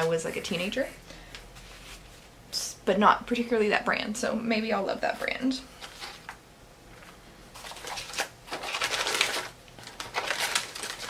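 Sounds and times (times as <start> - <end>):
packaging rustling and crumpling: 7.0 - 11.0.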